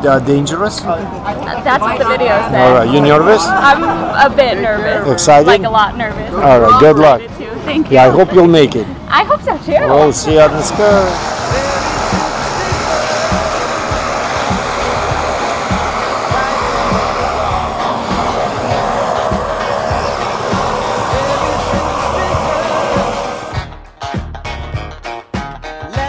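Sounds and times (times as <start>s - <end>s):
loud rushing noise: 9.9s - 23.7s.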